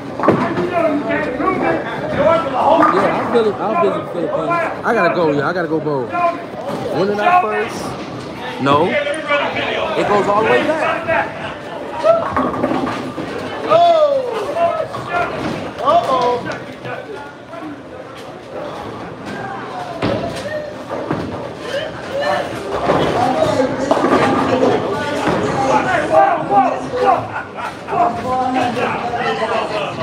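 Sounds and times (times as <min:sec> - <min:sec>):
voices talking in echoing hall: 0:00.0 - 0:30.0.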